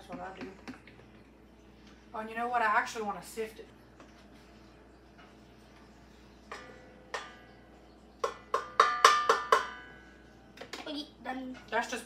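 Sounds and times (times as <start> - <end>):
measuring cup knocking on metal bowl: 8.2 - 9.8.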